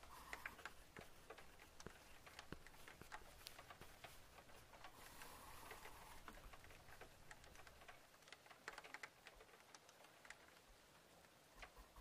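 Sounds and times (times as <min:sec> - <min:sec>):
faint irregular clicks: 0:00.0 - 0:12.0
low hiss: 0:00.0 - 0:12.0.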